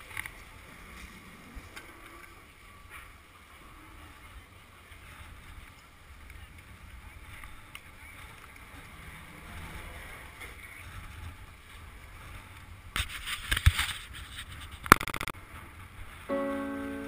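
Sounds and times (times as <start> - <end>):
wind rumbling on microphone: 0.0 - 16.3
skis sliding over snow: 4.9 - 14.9.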